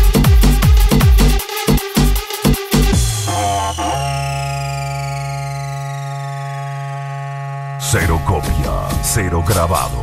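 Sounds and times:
synth bass: 0.0 - 10.0
synthesizer chord gliding downward: 1.4 - 8.9.

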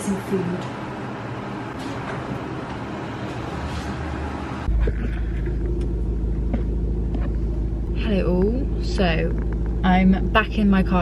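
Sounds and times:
car engine idling: 4.2 - 11.0.

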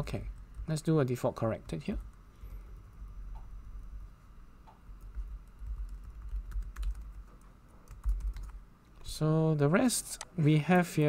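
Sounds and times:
typing on keyboard: 5.0 - 8.6.

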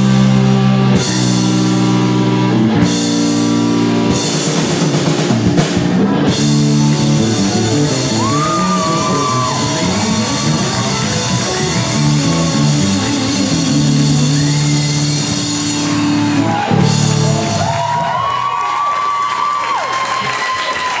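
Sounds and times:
high sustained guitar notes: 0.0 - 17.8
bass guitar: 0.0 - 18.6
electric guitars: 0.0 - 18.6
drums: 0.0 - 21.0.

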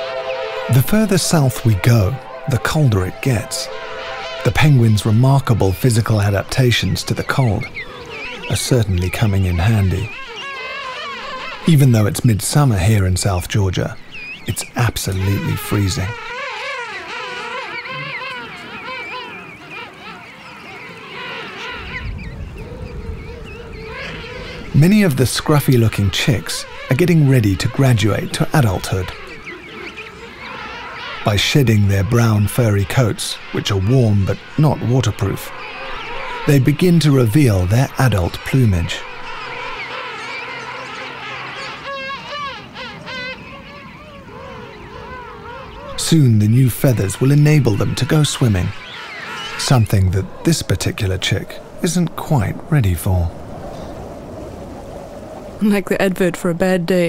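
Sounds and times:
penguins calling: 0.0 - 53.3.

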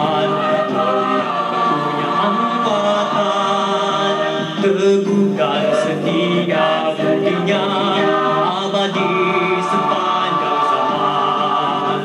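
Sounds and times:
male soloist singing: 0.0 - 1.3, 1.9 - 12.0
choir singing held chords: 0.0 - 12.0.

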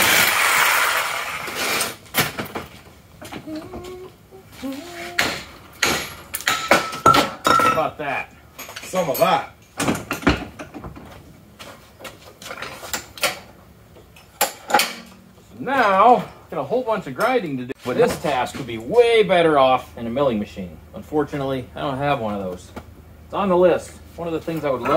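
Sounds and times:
hammer clanking on metal: 5.1 - 7.9, 14.4 - 15.5.

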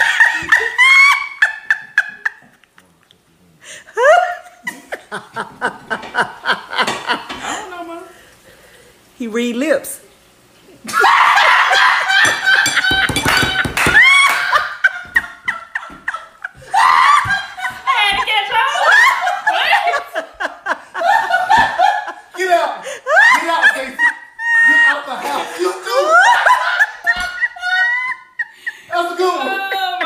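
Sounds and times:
girl laughing hard: 0.0 - 2.6, 10.8 - 22.2, 23.0 - 30.0.

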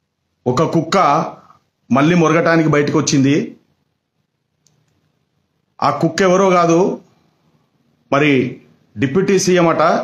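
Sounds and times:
man speaking: 0.4 - 3.7, 5.8 - 7.2, 8.0 - 10.0
faint click: 4.6 - 5.1.

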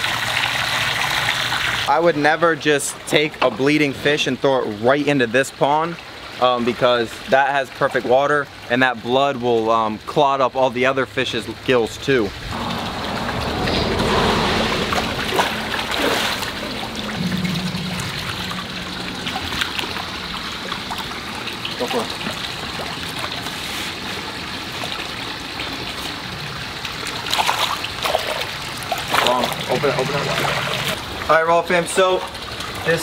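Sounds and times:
water running and splashing: 0.0 - 33.0
net splashing through water: 12.5 - 22.0, 27.0 - 31.0.

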